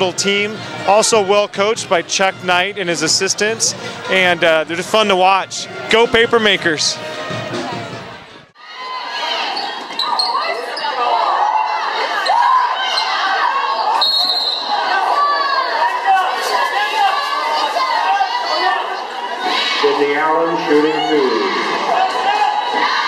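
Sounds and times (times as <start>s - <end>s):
spectators shouting and cheering: 0.0s - 23.0s.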